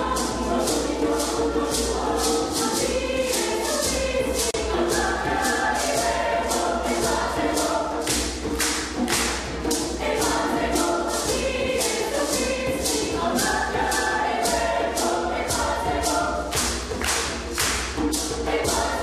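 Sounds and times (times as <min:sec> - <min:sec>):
mixed choir singing in harmony: 0:00.0 - 0:19.0
sharp percussive hits: 0:00.0 - 0:19.0.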